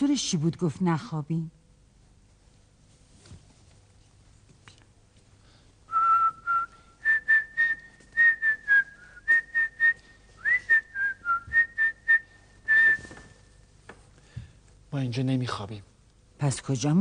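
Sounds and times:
person whistling a tune: 0:05.9 - 0:13.4.

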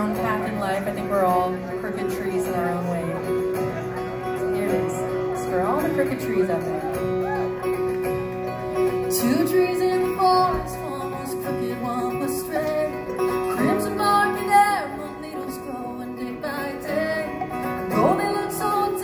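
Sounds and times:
acoustic guitar: 0:00.0 - 0:19.0
banjo: 0:00.0 - 0:19.0.

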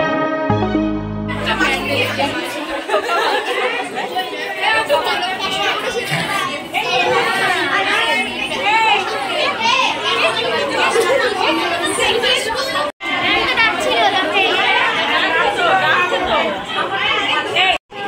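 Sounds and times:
women and girls talking: 0:01.3 - 0:18.0.

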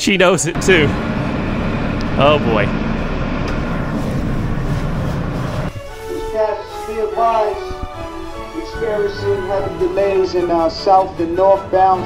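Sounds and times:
subway train wheels rumbling: 0:00.0 - 0:11.3.

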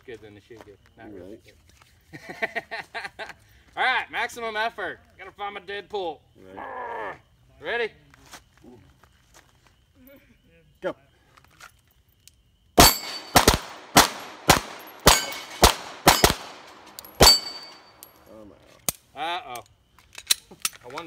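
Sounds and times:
steel plates ringing: 0:12.8 - 0:13.5, 0:14.2 - 0:18.2
pistol shots: 0:12.8 - 0:18.1.

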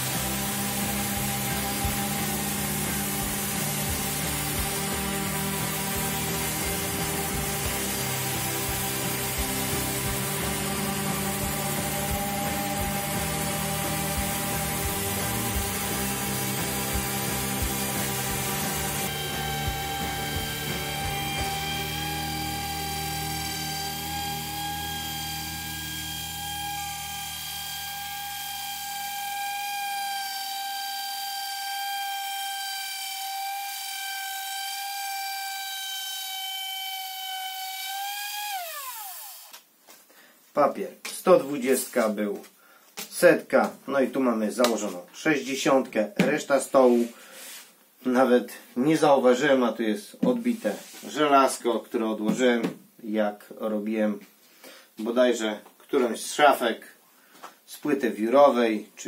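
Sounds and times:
orbital sander on wood: 0:00.0 - 0:39.6.

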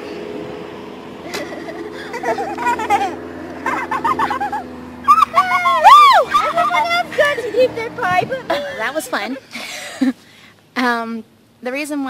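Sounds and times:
woman whooping and squealing: 0:05.0 - 0:07.5.

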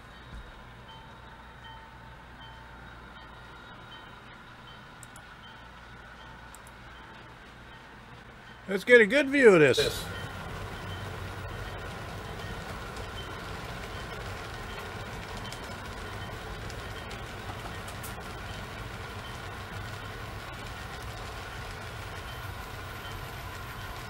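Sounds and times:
faint whine: 0:00.0 - 0:24.0
model trains running: 0:00.0 - 0:24.0.

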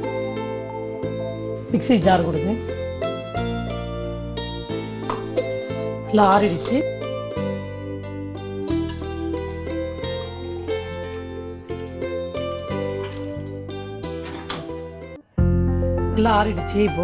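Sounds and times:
plucked string melody: 0:00.0 - 0:17.0.

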